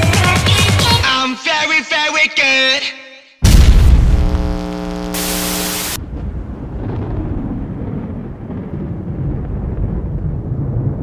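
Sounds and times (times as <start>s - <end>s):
static-like white noise: 3.7s - 6.0s.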